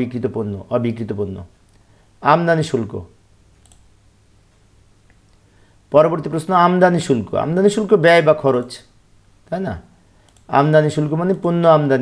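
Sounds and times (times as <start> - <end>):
computer mouse click: 3.6 - 3.9, 10.2 - 10.5.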